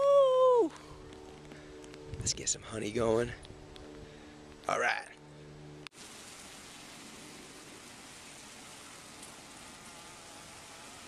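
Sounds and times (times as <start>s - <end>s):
steady hiss: 6.0s - 11.0s.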